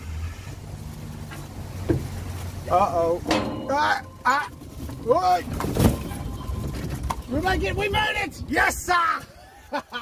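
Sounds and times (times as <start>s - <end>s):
golf cart motor humming: 0.5s - 8.9s.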